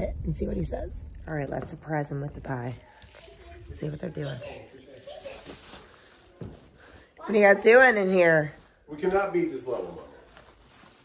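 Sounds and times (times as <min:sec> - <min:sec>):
plastic bag rustling: 0:02.2 - 0:11.0.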